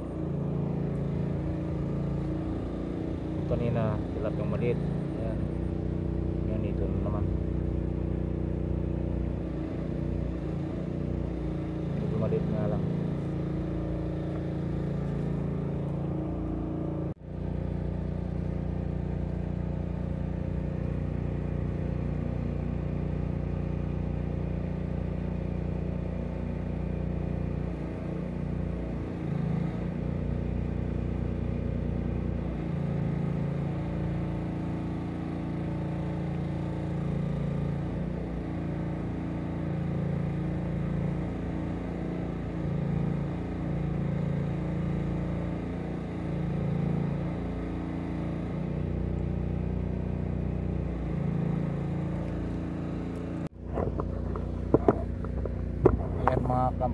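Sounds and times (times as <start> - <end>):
engine humming steadily: 0.0 - 56.9.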